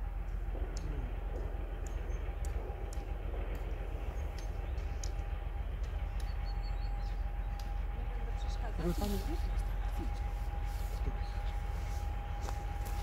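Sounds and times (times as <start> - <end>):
diesel locomotive rumbling: 0.0 - 13.0
thin steady whine: 0.0 - 13.0.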